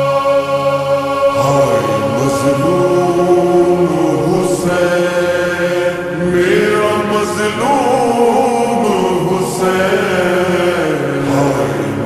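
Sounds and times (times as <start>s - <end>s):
reverberant chanted lament: 0.0s - 12.0s.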